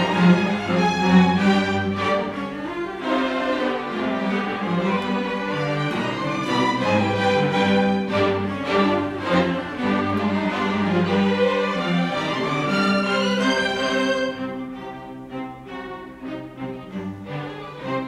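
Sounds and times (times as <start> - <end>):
string orchestra playing: 0.0 - 18.0.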